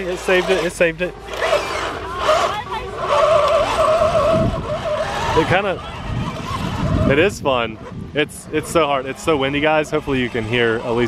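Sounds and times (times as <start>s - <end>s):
electric motors whining: 0.0s - 11.0s
wind buffeting microphone: 0.0s - 11.0s.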